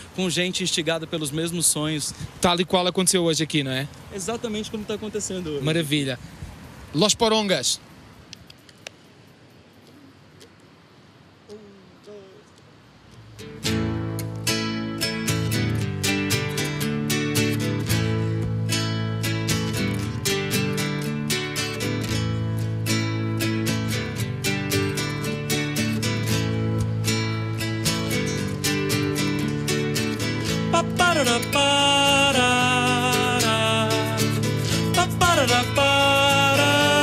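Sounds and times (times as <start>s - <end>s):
acoustic guitars strumming: 13.2s - 37.0s.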